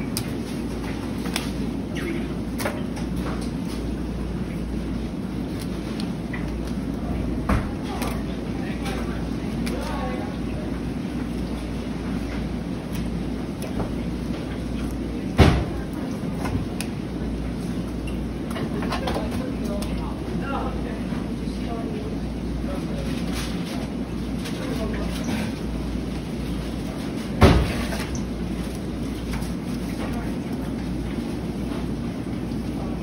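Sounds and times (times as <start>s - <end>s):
low machinery hum: 0.0s - 33.0s.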